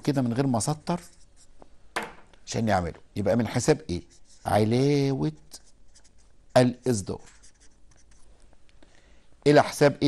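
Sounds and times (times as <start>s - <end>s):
marker pen writing on whiteboard: 0.0s - 2.2s, 2.9s - 8.3s.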